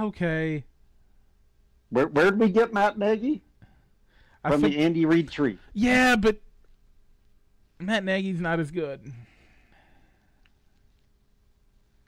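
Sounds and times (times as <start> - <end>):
man's voice: 4.5 - 6.4
breathy sigh: 9.1 - 10.4.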